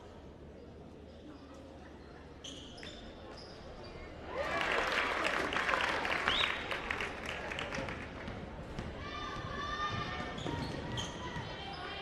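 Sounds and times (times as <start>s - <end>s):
sneakers squeaking: 1.1s - 4.1s, 9.9s - 12.0s.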